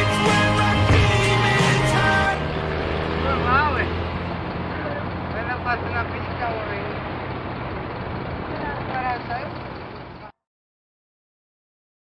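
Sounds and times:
rock song: 0.0 - 4.0
road noise: 0.0 - 10.4
vehicle engine drone: 0.0 - 10.4.

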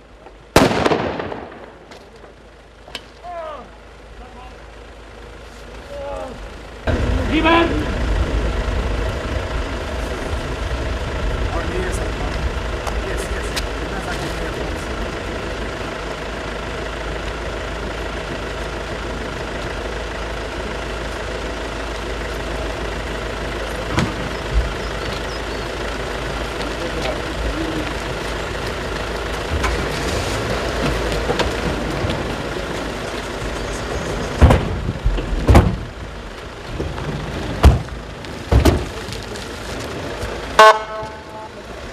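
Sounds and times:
engine idling: 0.0 - 41.9.

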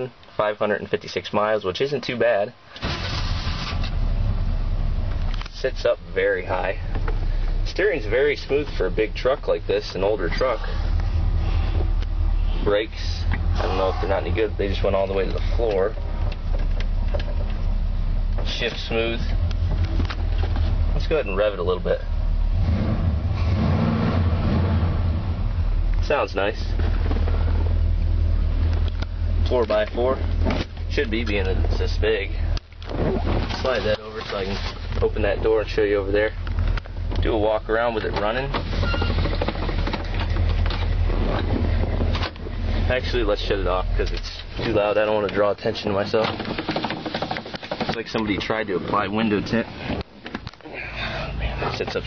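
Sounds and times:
car engine idling: 2.6 - 52.0.

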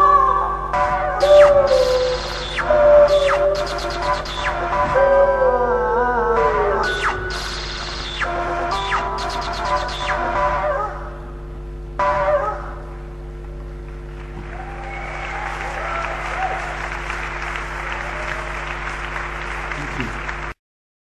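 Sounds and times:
steady electrical hum: 0.0 - 20.5
audience applause and cheering: 13.8 - 20.6.

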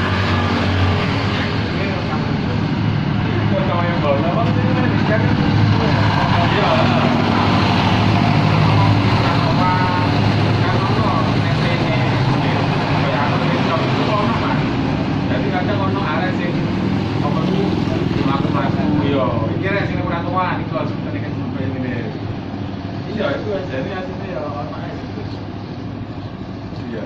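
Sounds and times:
road traffic engines: 0.0 - 27.0
people's voices: 0.9 - 27.0.

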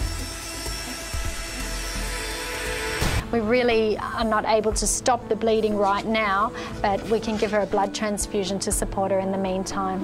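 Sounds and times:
electric clippers buzzing: 0.0 - 3.2
background music: 0.0 - 10.0.

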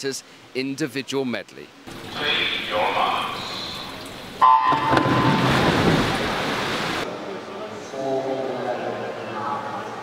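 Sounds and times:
swimmers diving splash: 4.4 - 7.1.

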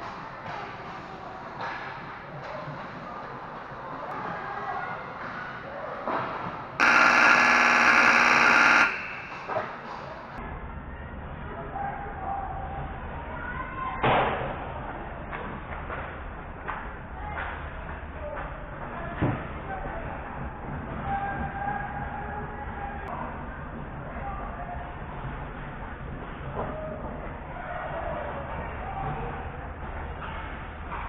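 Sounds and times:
noisy rink ambience: 0.0 - 31.0
steady high tone: 6.8 - 9.6
scoreboard horn buzzing: 6.8 - 9.8.

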